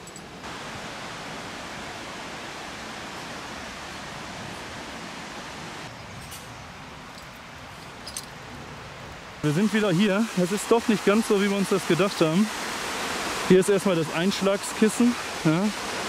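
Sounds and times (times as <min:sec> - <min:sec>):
stream and waterfall rushing: 0:00.0 - 0:06.0, 0:06.7 - 0:16.0.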